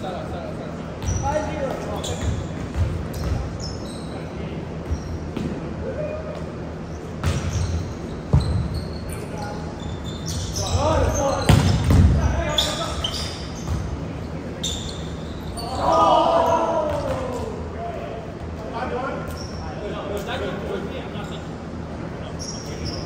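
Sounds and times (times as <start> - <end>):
short high squeaks: 3.1 - 5.3, 6.9 - 11.8, 12.4 - 13.9, 14.6 - 16.6, 19.2 - 19.8, 22.2 - 23.0
volleyball thumps echoing: 11.4 - 12.4
players shouting: 15.6 - 18.0.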